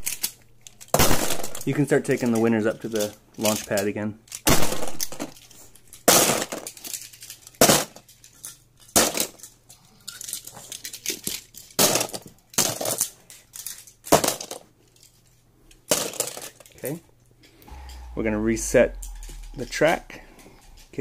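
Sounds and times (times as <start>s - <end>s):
toy cars clattering into plastic tub: 0.0s - 15.1s, 15.8s - 17.0s.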